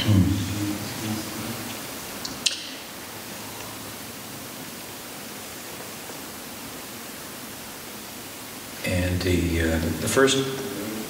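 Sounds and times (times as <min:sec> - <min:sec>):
man's voice: 0:00.0 - 0:01.6, 0:08.8 - 0:11.0
microphone hiss: 0:00.0 - 0:11.0.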